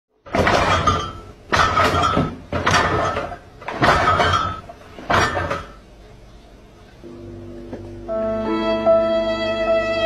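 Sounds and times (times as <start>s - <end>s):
refrigerator door banging: 0.3s - 5.8s
jars and bottles clinking: 0.4s - 5.8s.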